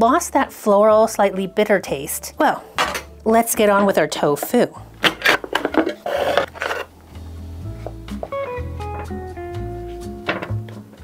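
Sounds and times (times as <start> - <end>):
plucked string music with bass: 4.9 - 11.0
plastic rasping handling noise: 5.0 - 6.9.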